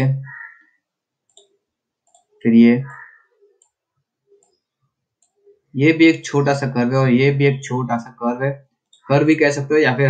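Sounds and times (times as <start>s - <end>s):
computer mouse clicks: 1.2s - 5.6s, 8.8s - 9.1s
man's voice: 2.5s - 2.9s, 5.8s - 10.0s.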